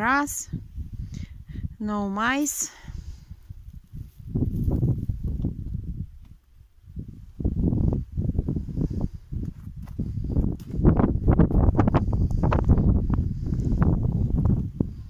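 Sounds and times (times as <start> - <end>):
wind and handling rumble on microphone: 0.0 - 1.8, 2.6 - 15.0.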